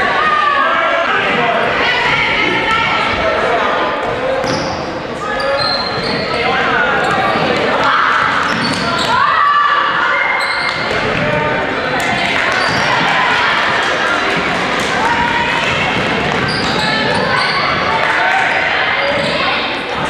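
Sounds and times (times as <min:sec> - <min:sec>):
echoing voices: 0:00.0 - 0:20.0
shoes squeaking: 0:04.3 - 0:13.2, 0:15.1 - 0:20.0.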